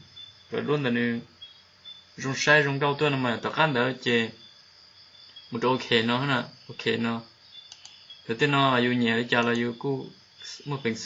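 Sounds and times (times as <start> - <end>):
faint high hiss: 0.0 - 11.0
computer mouse clicks: 7.6 - 8.0, 9.4 - 9.7
person speaking: 8.3 - 11.0.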